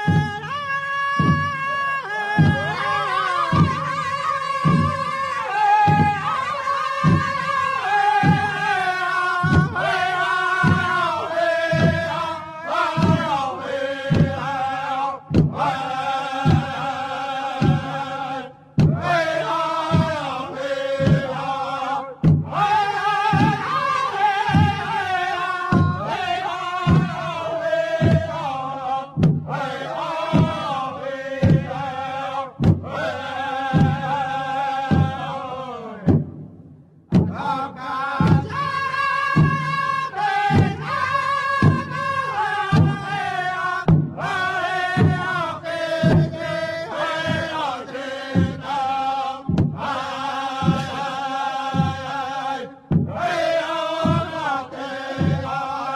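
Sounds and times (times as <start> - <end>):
large drum beats: 0.0 - 55.9
voices chanting together: 0.0 - 55.9.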